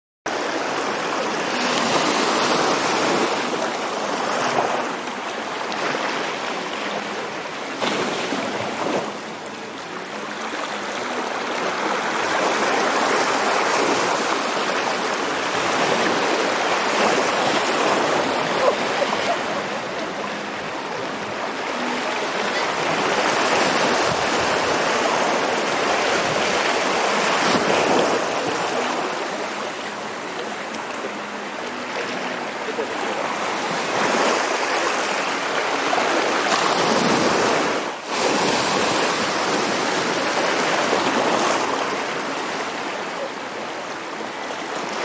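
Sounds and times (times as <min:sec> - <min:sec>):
small waves washing over sand: 0:00.3 - 0:45.0.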